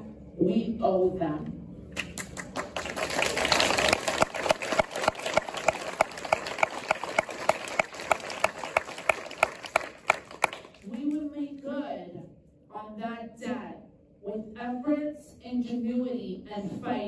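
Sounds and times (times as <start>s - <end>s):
rhythmic clapping in time: 1.9s - 11.1s
audience applause: 2.1s - 10.8s.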